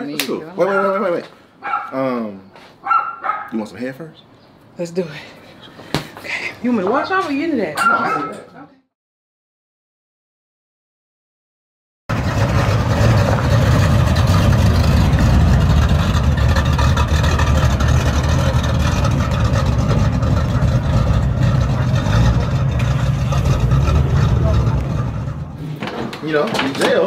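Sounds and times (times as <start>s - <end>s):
car engine idling: 12.1s - 25.7s.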